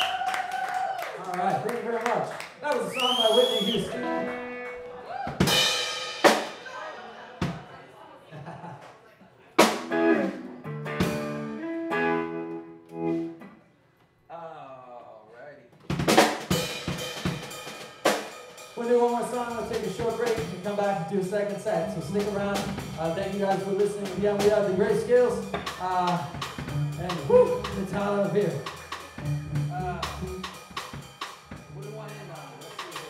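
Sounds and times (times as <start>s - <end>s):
rock band playing: 3.2s - 7.6s, 9.6s - 13.6s, 15.9s - 33.0s
drum and cymbal hits: 5.3s - 6.7s, 15.9s - 33.0s.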